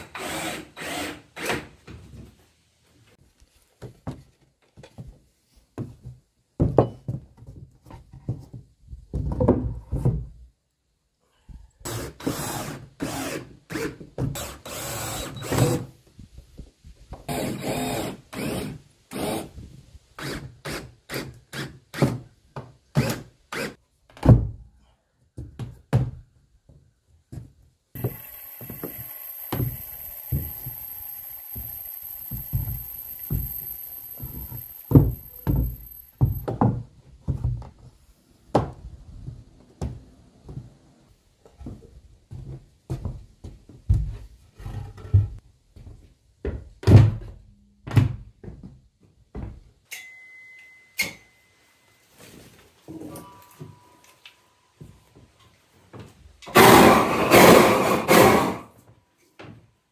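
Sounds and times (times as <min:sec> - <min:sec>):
cordless drill whining: 0:00.0 - 0:01.5, 0:14.4 - 0:15.8, 0:28.0 - 0:36.4.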